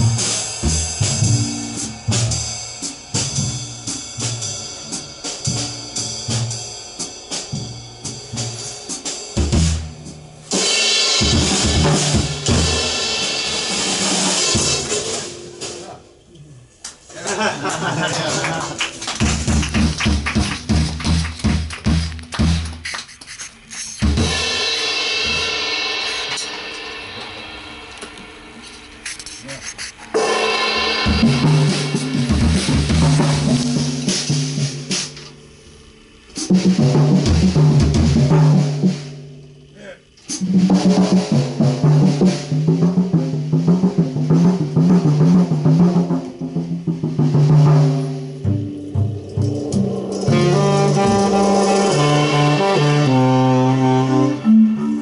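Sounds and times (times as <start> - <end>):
upright double bass: 0.0 - 6.7, 17.3 - 24.4, 31.0 - 35.0, 40.5 - 55.0
drum kit strokes and cymbals: 0.0 - 55.0
double bass plucked: 42.4 - 55.0.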